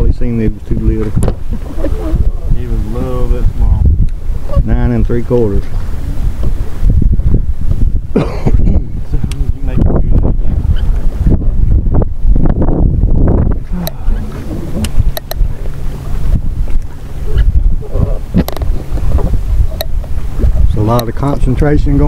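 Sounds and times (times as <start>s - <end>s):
water lapping around boat: 0.0s - 22.0s
wind buffeting microphone: 0.0s - 22.0s
sharp clicks: 14.8s - 15.4s.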